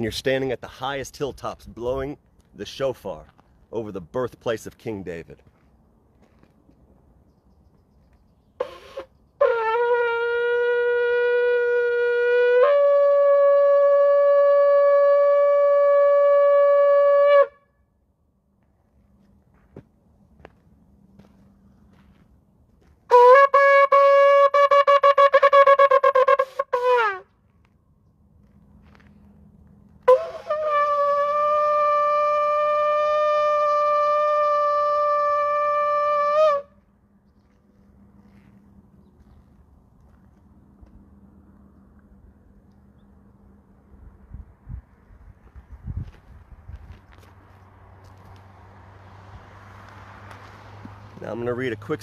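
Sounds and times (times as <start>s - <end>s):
ram's horn long blast: 8.6s - 17.8s, 23.1s - 27.4s, 30.0s - 36.9s
shofar blowing long note: 8.6s - 17.8s, 23.1s - 27.3s, 30.0s - 36.8s.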